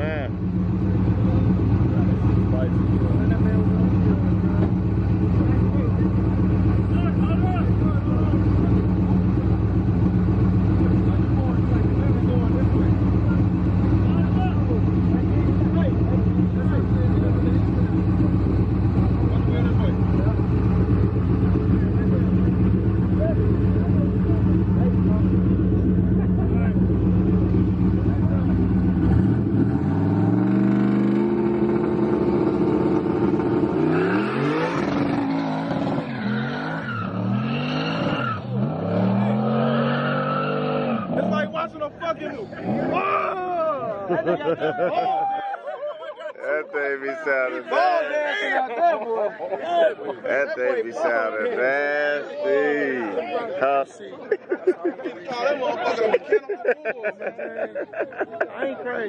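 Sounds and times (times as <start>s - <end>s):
car engine idling loudly: 0.0s - 36.0s
car accelerating through gears: 28.8s - 41.5s.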